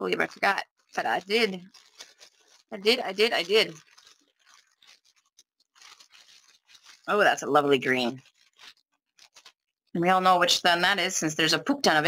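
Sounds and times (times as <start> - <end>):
plastic bags rustling: 0.0 - 9.9.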